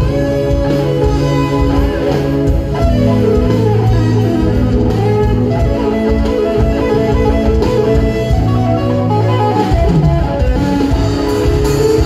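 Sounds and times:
bass guitar: 0:00.0 - 0:12.0
drum kit: 0:00.0 - 0:12.0
electric guitar: 0:00.0 - 0:12.0
keyboard: 0:00.0 - 0:12.0.

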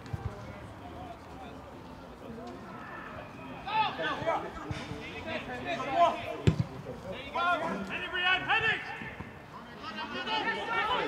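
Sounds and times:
football kick thud: 0:06.4 - 0:06.7
players shouting: 0:07.2 - 0:11.0.

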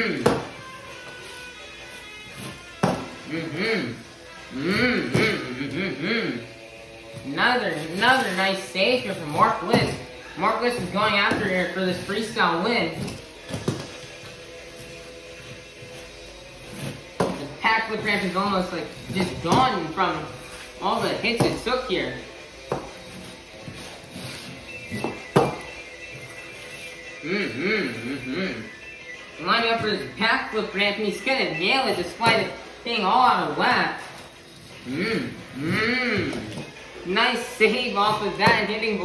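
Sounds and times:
person imitating engine revving: 0:03.3 - 0:06.5, 0:27.2 - 0:28.7.

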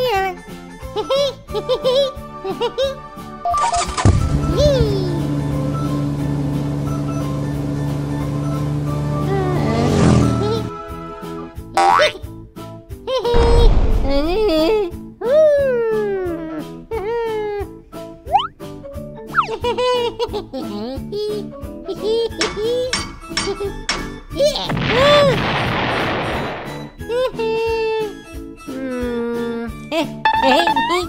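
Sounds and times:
light background music: 0:00.0 - 0:31.0
cartoon explosion blast: 0:13.3 - 0:14.9, 0:24.6 - 0:27.0
rising and falling tone: 0:18.3 - 0:18.5.

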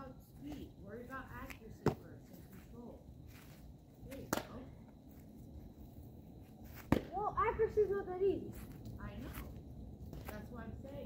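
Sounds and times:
baseball popping into gloves: 0:04.1 - 0:04.6, 0:06.8 - 0:07.2.

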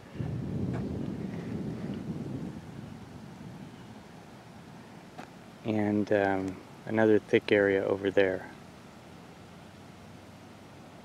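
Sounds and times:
low rumbling noise: 0:00.0 - 0:09.0.

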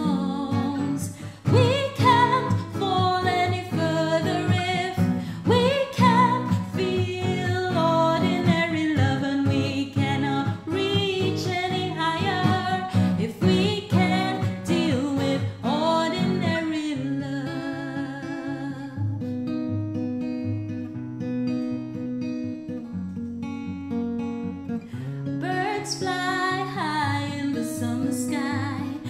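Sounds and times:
woman singing: 0:00.0 - 0:19.4, 0:25.3 - 0:29.0
acoustic guitar playing: 0:00.0 - 0:29.0.

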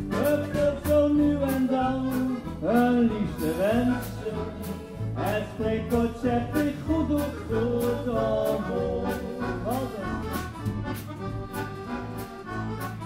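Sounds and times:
accordion melody: 0:00.0 - 0:13.0
bass: 0:00.0 - 0:13.0
drum kit: 0:00.0 - 0:13.0
guitar: 0:00.0 - 0:13.0.

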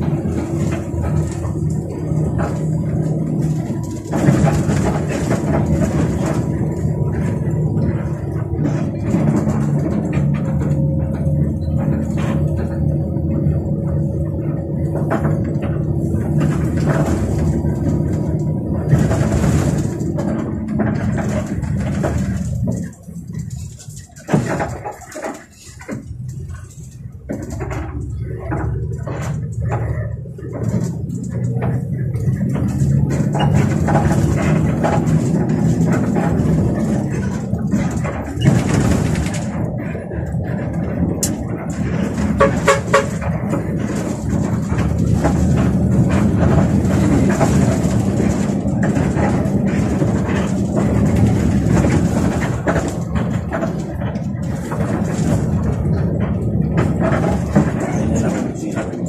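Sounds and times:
bus engine and road noise: 0:00.0 - 0:59.0.

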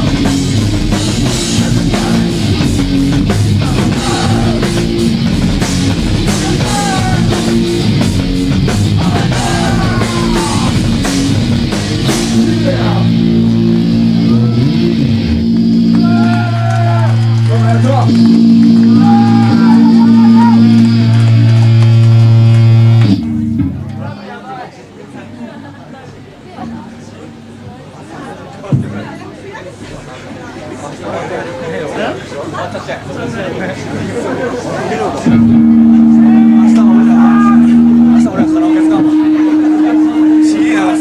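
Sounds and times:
hardcore punk band playing live: 0:00.0 - 0:24.1, 0:35.2 - 0:41.0
shouted vocals: 0:03.5 - 0:05.0, 0:06.2 - 0:07.6, 0:08.9 - 0:11.0, 0:15.9 - 0:18.1, 0:18.7 - 0:21.0, 0:35.8 - 0:41.0.

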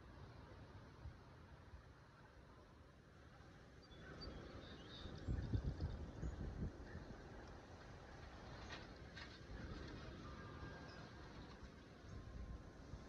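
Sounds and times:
wind gusting over microphone: 0:04.2 - 0:13.0.

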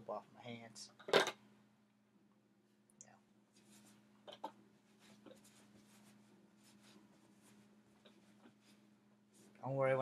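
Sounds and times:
steady low hum: 0:00.0 - 0:10.0
soft rustling and rubbing: 0:03.5 - 0:10.0.

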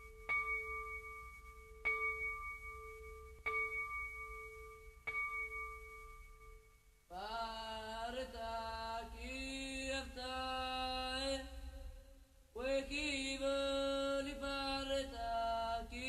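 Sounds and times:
bell ringing: 0:00.0 - 0:06.9.

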